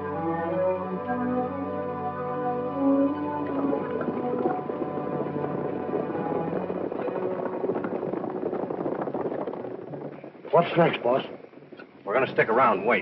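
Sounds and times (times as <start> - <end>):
film score music: 0.0 - 13.0
horses hoofbeats clattering: 3.0 - 13.0.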